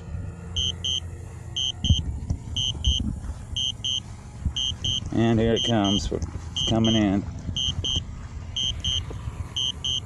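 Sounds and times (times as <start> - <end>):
double beep warning: 0.6 - 1.0, 1.6 - 2.0, 2.6 - 3.0, 3.6 - 4.0, 4.6 - 6.0, 6.6 - 7.0, 7.6 - 8.0, 8.6 - 9.0, 9.6 - 10.0
wind buffeting microphone: 1.8 - 3.6.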